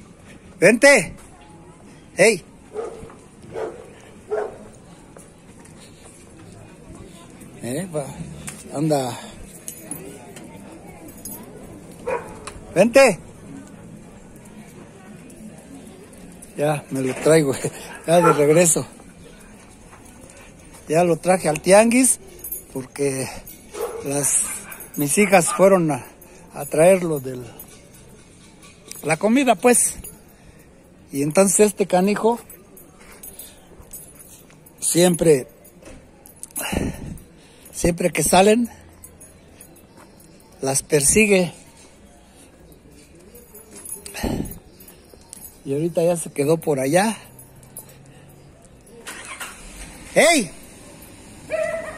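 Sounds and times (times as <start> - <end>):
outdoor street background: 0.0 - 51.9
man's voice: 16.6 - 19.0, 50.1 - 50.6.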